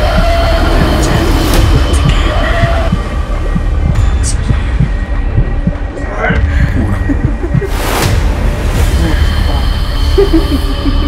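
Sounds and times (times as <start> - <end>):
heartbeat-like pulse: 0.0 - 11.0
low throbbing rumble: 0.0 - 11.0.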